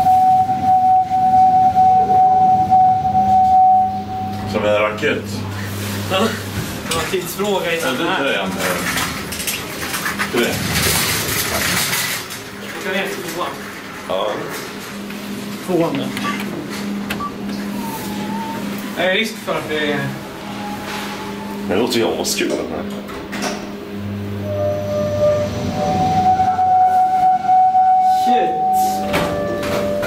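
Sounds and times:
elevator motor hum and whine: 0.0s - 30.0s
shopping trolley clinking and rattling: 7.4s - 13.7s.

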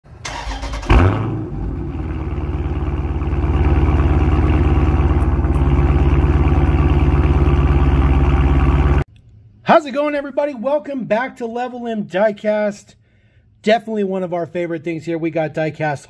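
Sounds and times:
car engine idling: 0.3s - 9.0s.

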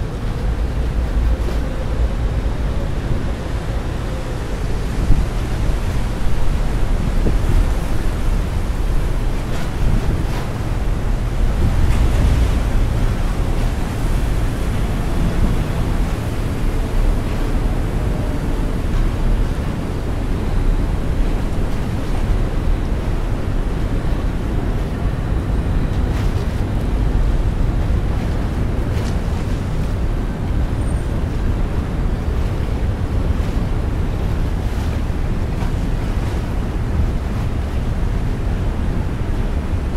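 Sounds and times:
river water washing against pier: 0.0s - 39.9s
wind blowing on microphone: 0.0s - 39.9s.

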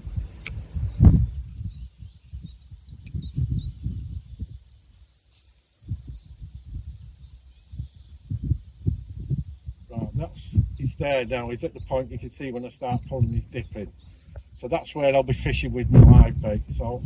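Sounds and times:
small birds chirping: 0.0s - 17.0s
wind buffeting microphone: 0.0s - 17.0s.

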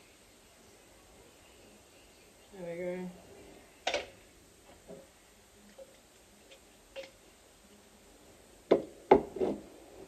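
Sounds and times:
items knocking on benchtop: 8.7s - 9.6s.

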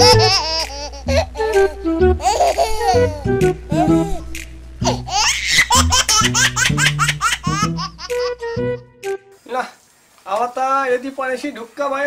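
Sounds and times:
background music: 0.0s - 9.4s.

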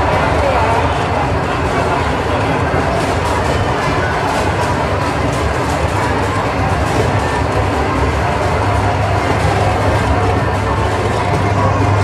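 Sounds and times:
amusement ride car rumbling: 0.0s - 12.0s.

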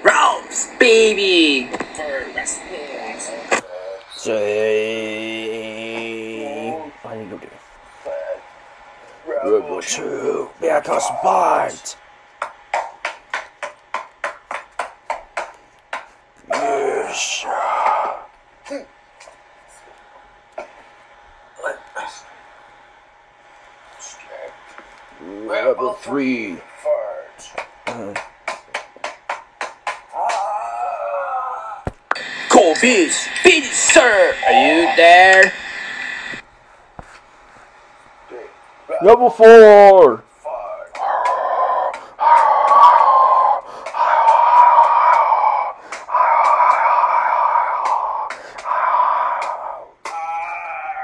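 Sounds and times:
faint hiss: 32.2s - 36.4s.

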